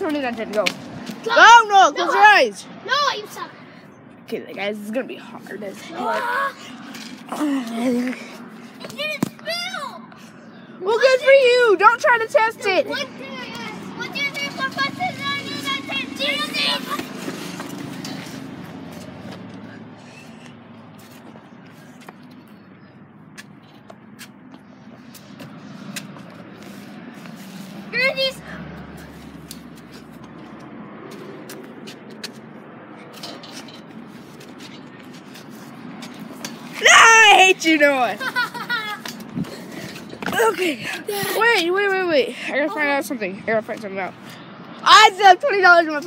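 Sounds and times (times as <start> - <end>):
child shouting: 1.2 - 3.6, 5.8 - 6.6, 8.8 - 10.2, 10.8 - 17.2, 27.9 - 28.5, 36.8 - 37.8
child's drawn-out voiced sounds: 1.3 - 3.6, 5.8 - 6.7, 7.3 - 10.2, 12.6 - 17.2, 27.9 - 28.6.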